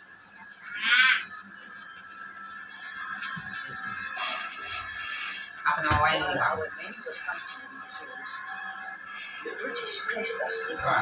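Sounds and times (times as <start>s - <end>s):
high-pitched animal-like cry: 0.6s - 1.3s.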